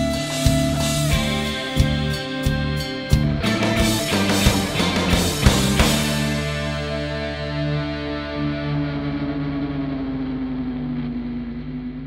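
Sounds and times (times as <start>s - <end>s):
distorted electric guitar chord: 0.0s - 12.0s.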